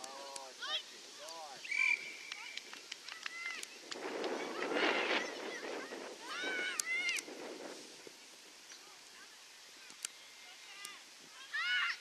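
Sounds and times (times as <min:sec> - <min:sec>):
high drawn-out calls: 0:00.6 - 0:03.7
children shouting: 0:05.4 - 0:07.3, 0:11.4 - 0:12.0.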